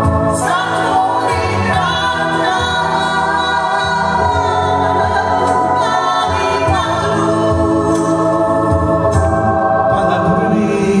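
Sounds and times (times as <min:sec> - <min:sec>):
band accompaniment: 0:00.0 - 0:11.0
voices singing harmonies: 0:00.0 - 0:11.0.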